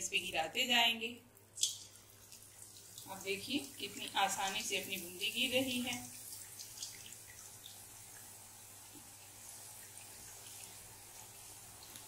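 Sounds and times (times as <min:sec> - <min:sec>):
batter sizzling in hot oil: 0:01.8 - 0:12.0.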